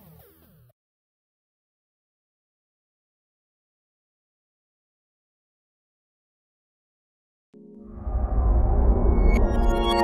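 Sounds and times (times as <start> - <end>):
synthesizer chord: 7.6 - 10.0
deep rumble: 7.9 - 10.0.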